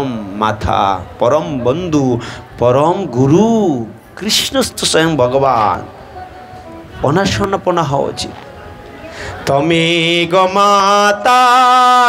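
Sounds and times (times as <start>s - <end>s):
man singing a devotional chant: 9.4s - 12.0s.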